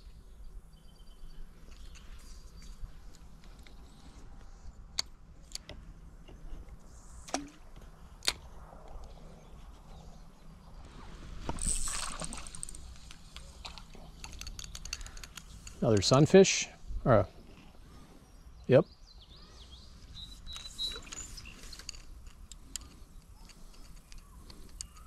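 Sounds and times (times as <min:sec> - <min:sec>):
reel and line ticking: 0:11.5 - 0:16.2, 0:20.2 - 0:25.0.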